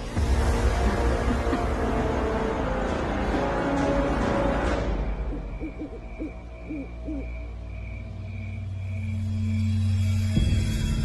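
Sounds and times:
droning suspense music: 0.0s - 11.0s
owl hooting: 5.2s - 7.4s.

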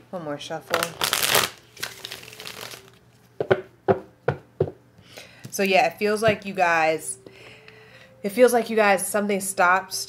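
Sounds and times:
cards rustling while shuffled: 0.7s - 3.0s.

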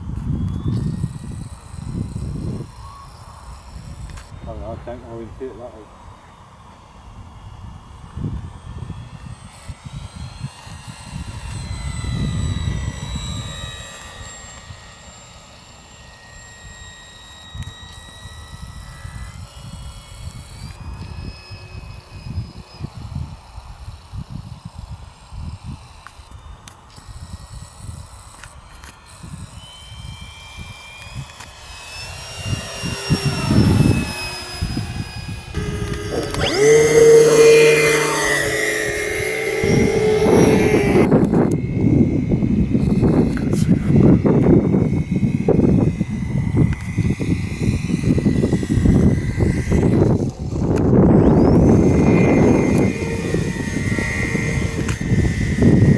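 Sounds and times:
model plane motor whining: 0.0s - 55.9s.

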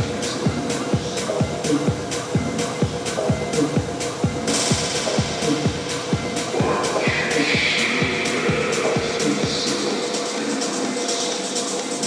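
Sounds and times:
hi-hats: 0.0s - 12.0s
hissing synth wash: 0.0s - 12.0s
techno kick drum: 0.0s - 12.0s.

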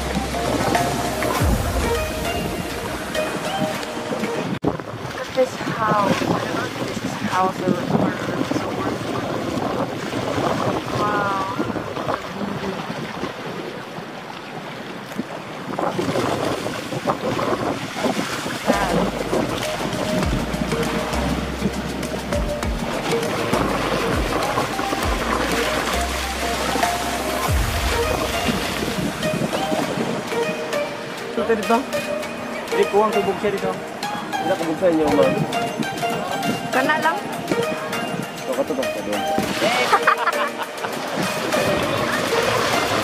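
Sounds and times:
background music with bass line: 0.0s - 4.6s, 18.7s - 43.0s
wind buffeting microphone: 0.0s - 40.0s
shallow sea water washing: 0.0s - 43.0s.

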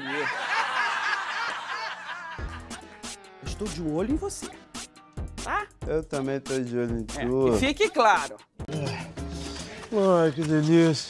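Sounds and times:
audience laughter: 0.0s - 2.7s.

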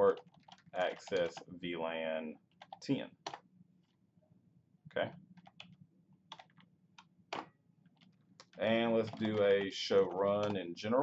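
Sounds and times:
computer keyboard keystrokes: 0.1s - 1.5s, 2.6s - 3.4s, 5.4s - 6.7s, 8.0s - 9.7s, 10.3s - 10.6s.

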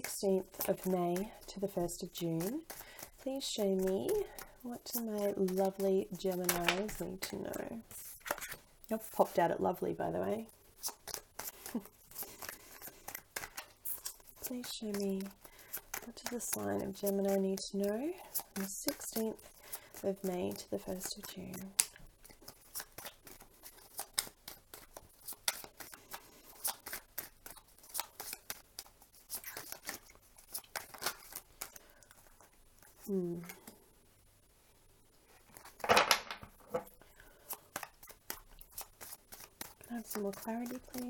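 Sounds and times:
cards being shuffled: 0.0s - 9.4s, 10.4s - 33.8s, 35.4s - 41.0s.

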